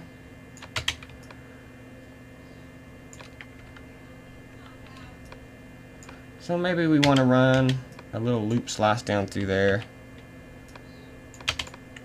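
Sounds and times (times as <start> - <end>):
faint steady hum: 0.0 - 12.0
computer keyboard keystrokes: 0.6 - 1.3, 3.1 - 3.8, 7.0 - 7.8, 10.7 - 12.0.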